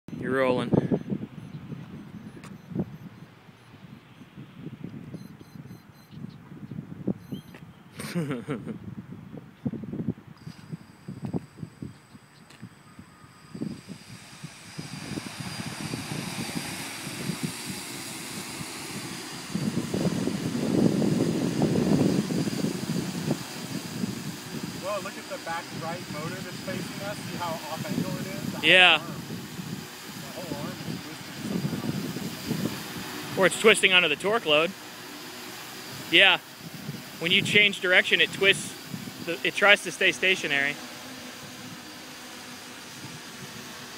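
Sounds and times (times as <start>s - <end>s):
multicopter propellers whirring: 0.1s - 9.0s, 9.9s - 43.9s.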